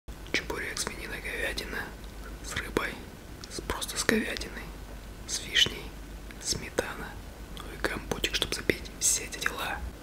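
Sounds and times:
man whispering: 0.3s - 10.0s.

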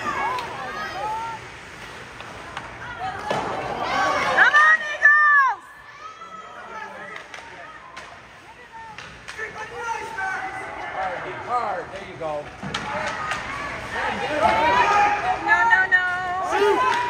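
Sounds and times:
loud shout: 3.7s - 6.9s
hockey sticks clacking on puck: 7.0s - 10.2s, 11.8s - 14.9s
players and spectators calling: 8.5s - 11.9s, 12.7s - 17.0s.

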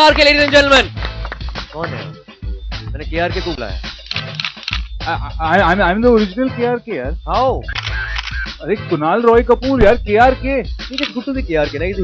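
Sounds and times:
man's voice: 0.0s - 1.0s, 1.7s - 2.2s, 2.8s - 3.8s, 5.0s - 12.0s
low music bed: 0.0s - 12.0s.

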